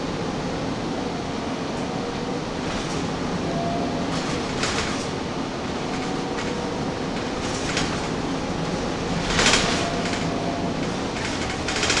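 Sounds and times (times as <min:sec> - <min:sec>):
bus engine and road rumble: 0:00.0 - 0:12.0
cooling fans running: 0:00.0 - 0:12.0
bus body rattling: 0:02.2 - 0:03.4, 0:04.0 - 0:12.0.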